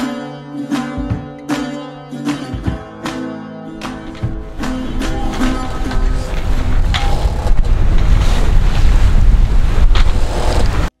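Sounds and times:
rush of waves: 3.8s - 10.9s
wind buffeting microphone: 4.0s - 11.0s.

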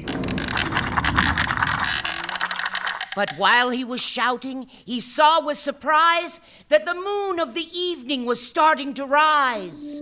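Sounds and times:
ratchet-like clicking: 0.0s - 3.6s.

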